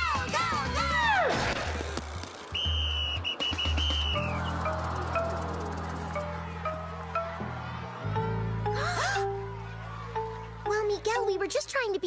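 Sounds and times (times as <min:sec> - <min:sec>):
cartoon underscore music: 0:03.4 - 0:12.0.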